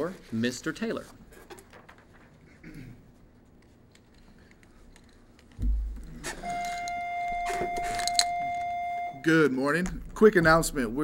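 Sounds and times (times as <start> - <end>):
steady high-pitched tone: 6.3 - 9.6.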